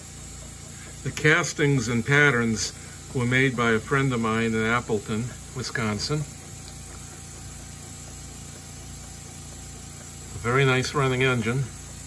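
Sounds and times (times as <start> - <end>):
air hiss: 0.0 - 12.0
model air engine puffing: 0.0 - 12.0.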